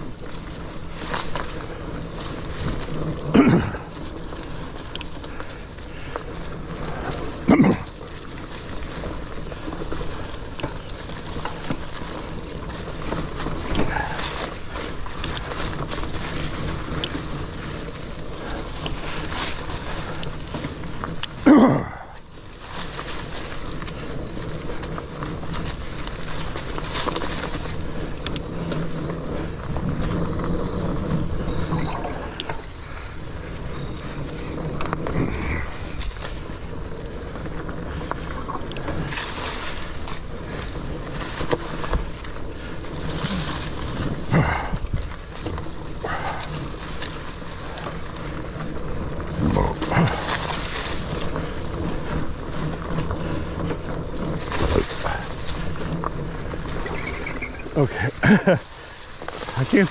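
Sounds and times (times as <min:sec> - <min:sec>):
bike rattling over bumps: 0:00.0 - 0:59.9
bike tyres on dirt trail: 0:00.0 - 0:59.9.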